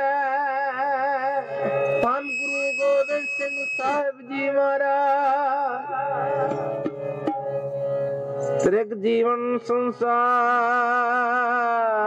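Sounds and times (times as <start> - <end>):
person singing: 0.0 - 7.7
steady high-pitched tone: 0.8 - 8.8.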